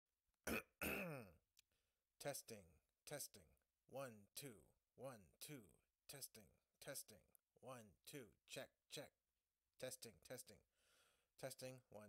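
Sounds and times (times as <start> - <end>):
man clearing his throat: 0.5 - 1.4.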